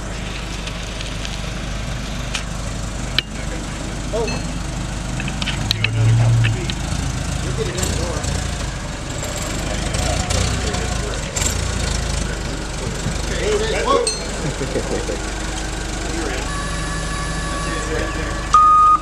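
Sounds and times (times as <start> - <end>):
forklift engine running: 0.0 - 19.0.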